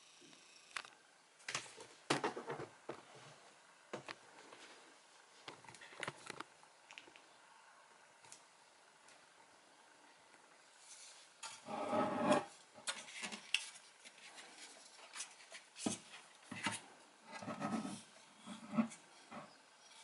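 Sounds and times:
speaker driver rubbing and scraping: 0:10.9 - 0:13.2, 0:15.1 - 0:20.0.

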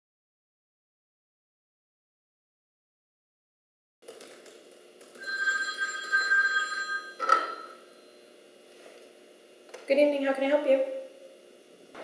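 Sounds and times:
mobile phone ringing: 0:05.2 - 0:07.9
knock of phone picked up: 0:07.2 - 0:07.6.

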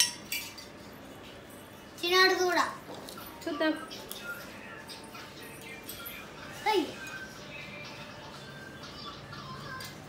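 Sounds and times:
spoon clinking against metal bowl: 0:00.0 - 0:00.8.

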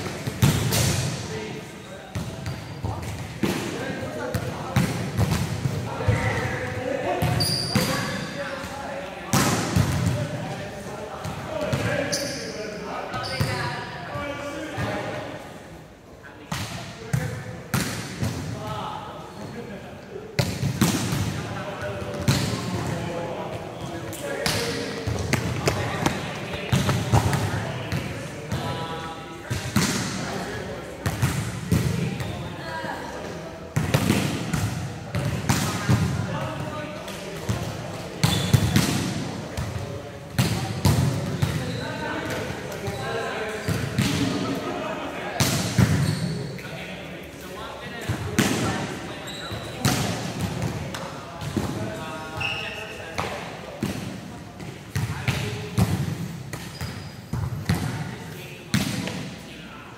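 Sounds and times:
volleyballs struck and bouncing: 0:00.0 - 0:01.1, 0:02.1 - 0:06.5, 0:16.5 - 0:18.5, 0:20.4 - 0:23.2, 0:33.7 - 0:41.6
players talking: 0:00.0 - 0:59.9.

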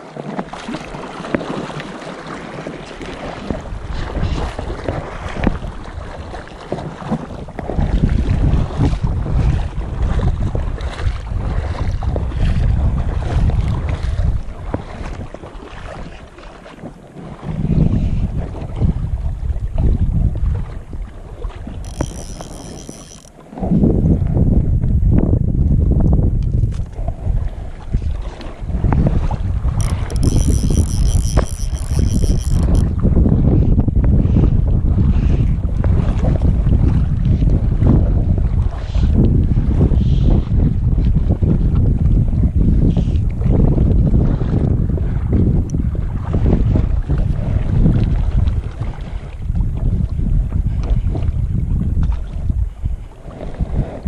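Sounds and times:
wind buffeting microphone: 0:00.6 - 0:54.0
high whirring: 0:21.9 - 0:23.3, 0:29.8 - 0:32.8.

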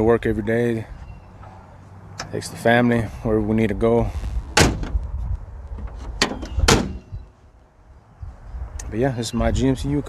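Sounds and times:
car hood slamming: 0:04.5 - 0:05.0, 0:05.9 - 0:07.1.

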